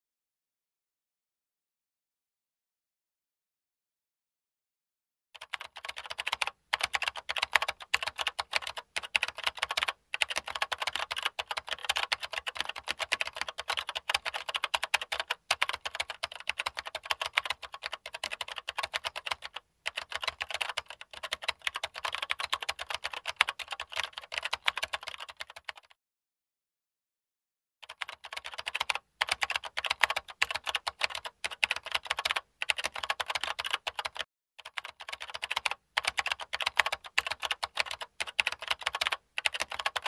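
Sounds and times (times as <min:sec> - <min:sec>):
fast keyboard clicking: 0:05.4 - 0:26.0, 0:27.8 - 0:40.0.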